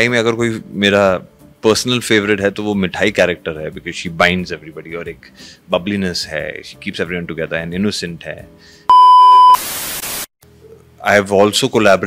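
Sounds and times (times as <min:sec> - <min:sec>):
test-tone beep: 0:08.9 - 0:09.6
tv static hiss: 0:09.2 - 0:10.3.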